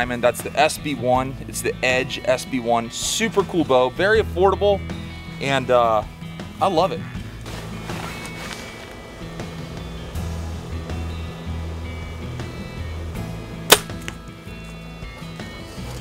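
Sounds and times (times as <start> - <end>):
background music with low notes: 0.0 - 16.0
sharp crack of bow shot: 13.7 - 14.1.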